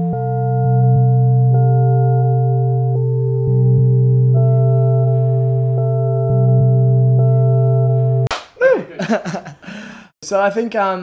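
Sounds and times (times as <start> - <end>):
sharp slap: 8.3 - 8.6
man laughing: 8.6 - 10.0.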